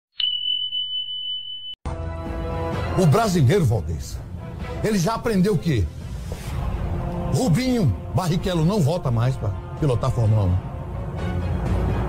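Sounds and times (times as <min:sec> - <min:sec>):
music: 0:01.8 - 0:12.0.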